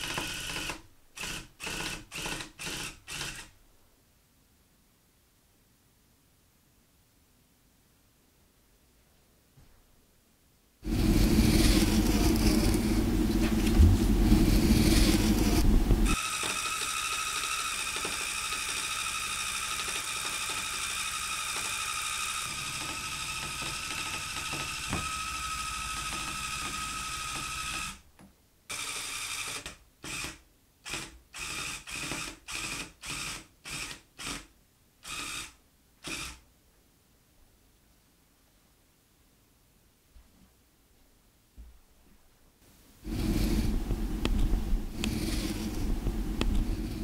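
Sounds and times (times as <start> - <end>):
tufting gun whining: 10.8 - 28.0, 43.1 - 47.0.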